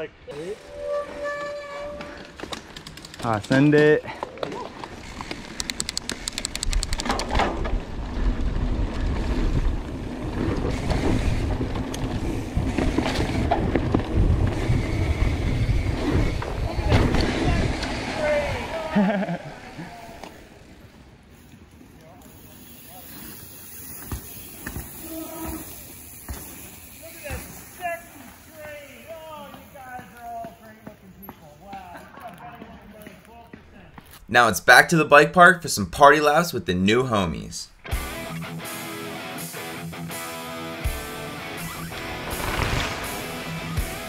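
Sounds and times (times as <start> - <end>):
bike frame and chain rattling: 0.3 - 8.4, 20.0 - 30.8
tyres on dirt: 0.6 - 35.0, 41.6 - 44.0
wind rushing over microphone: 6.4 - 18.7.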